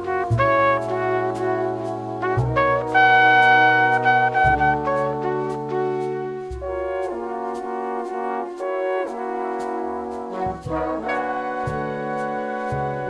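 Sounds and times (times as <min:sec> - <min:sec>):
solo trumpet: 0:00.0 - 0:13.0
sustained brass chords: 0:00.0 - 0:13.0.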